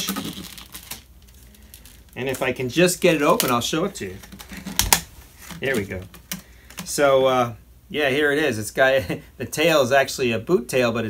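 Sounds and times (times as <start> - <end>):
plastic packaging crinkling: 0.0 - 6.9.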